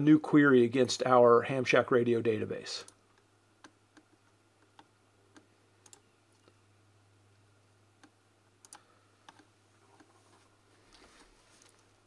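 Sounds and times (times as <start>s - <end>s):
low steady hum: 0.0s - 12.0s
computer mouse clicks: 2.8s - 6.6s, 8.0s - 10.1s.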